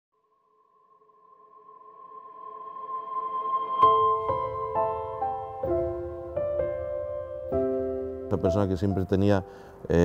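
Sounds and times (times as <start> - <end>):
ambient music sustained chord: 0.2 - 9.6.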